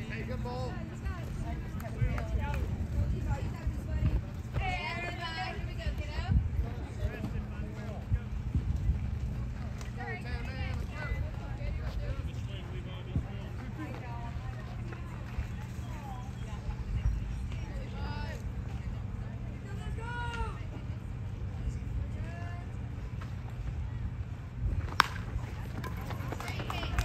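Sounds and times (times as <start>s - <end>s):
low irregular rumble: 0.0s - 27.0s.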